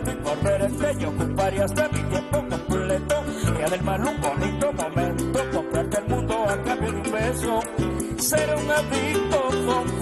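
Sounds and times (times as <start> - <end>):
repeating bass line: 0.0 - 10.0
small plucked string instrument: 0.0 - 10.0.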